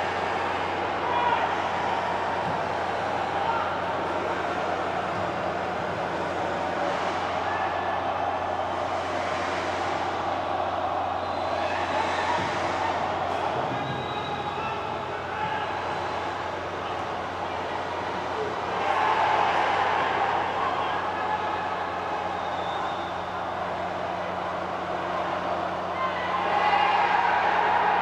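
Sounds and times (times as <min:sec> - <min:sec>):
empty stadium ambience: 0:00.0 - 0:28.0
faint players shouting: 0:00.0 - 0:28.0.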